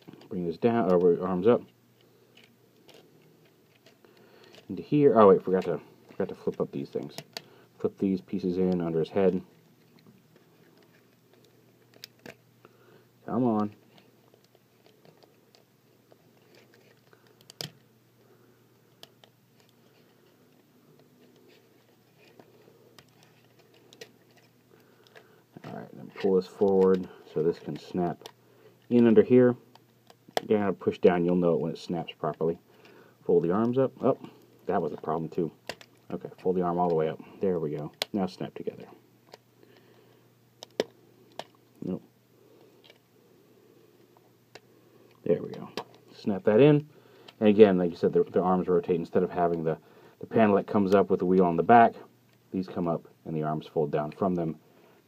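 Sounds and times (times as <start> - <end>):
plastic parts clicking together: 35.6 - 36.0, 40.6 - 41.6.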